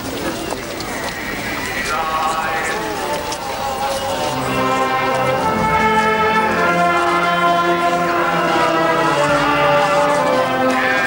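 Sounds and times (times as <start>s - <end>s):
brass band playing sustained chords: 1.0s - 11.0s.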